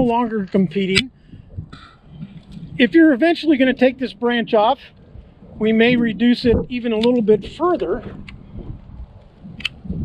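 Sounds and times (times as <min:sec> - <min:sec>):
wind rumble on microphone: 0:00.0 - 0:10.0
hand pruners click: 0:07.0 - 0:07.2.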